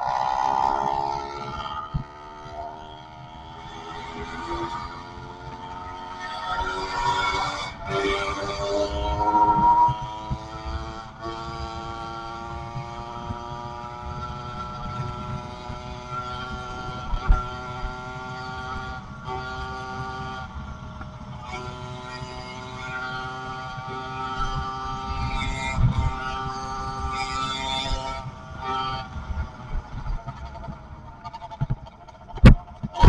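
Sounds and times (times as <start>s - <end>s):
two-stroke engine running: 0.0s - 33.0s
wind rumbling on microphone: 0.0s - 33.0s.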